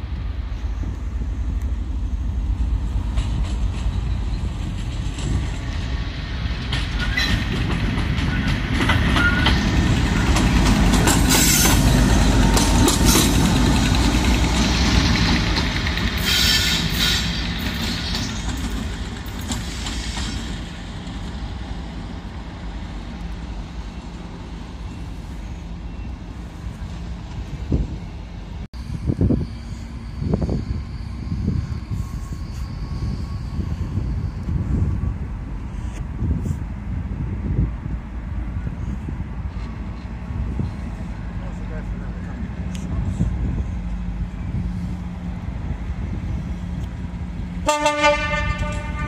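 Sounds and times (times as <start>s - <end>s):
diesel locomotive passing: 0.0s - 49.0s.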